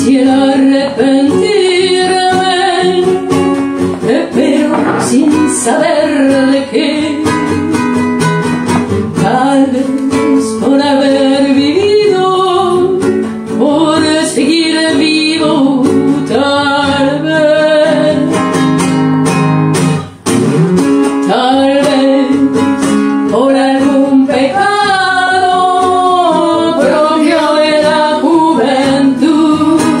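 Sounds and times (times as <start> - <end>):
classical guitar strummed and plucked: 0.0 - 30.0
person singing: 4.0 - 7.6, 9.2 - 18.3, 21.3 - 22.6, 23.3 - 30.0.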